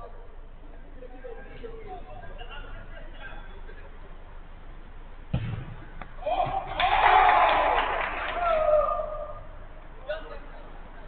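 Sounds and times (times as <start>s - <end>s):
football kicked with thud: 5.3s - 6.7s
players shouting: 6.2s - 9.6s.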